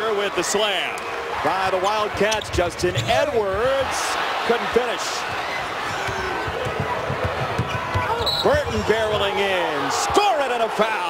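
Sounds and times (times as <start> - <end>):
arena crowd noise: 0.0 - 11.0
basketball bouncing on hardwood: 2.4 - 4.0, 5.8 - 9.4.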